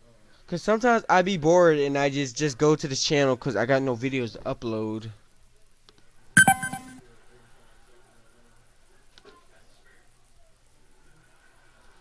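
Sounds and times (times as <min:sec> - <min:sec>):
loud ding-like tone: 0:06.4 - 0:07.0.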